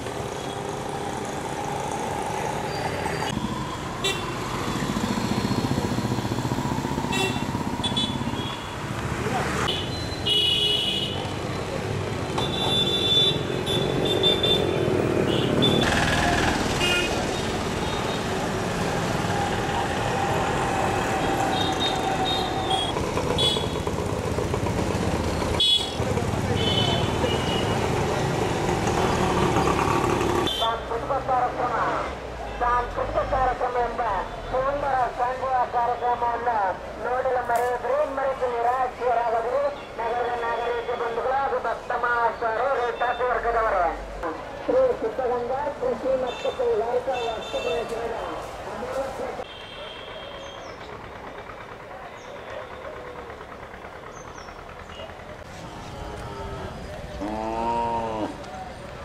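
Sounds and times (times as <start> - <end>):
motorcycle and rickshaw engines: 0.0 - 59.0.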